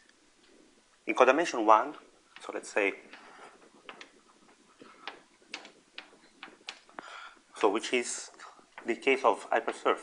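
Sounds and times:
light ticks of writing on board: 0:02.3 - 0:07.8.

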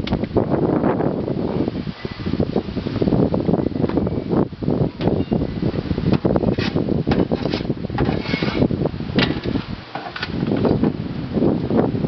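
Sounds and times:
shovel scraping soil in a wheelbarrow: 0:06.3 - 0:10.4.

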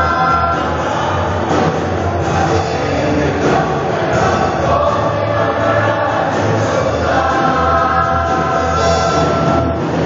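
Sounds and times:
band accompaniment: 0:00.0 - 0:10.0
choir singing gospel song: 0:00.0 - 0:10.0.

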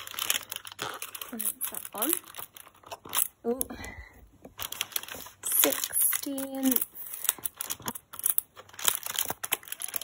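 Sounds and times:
cardboard crackling and tearing: 0:00.0 - 0:03.5, 0:04.6 - 0:10.0.

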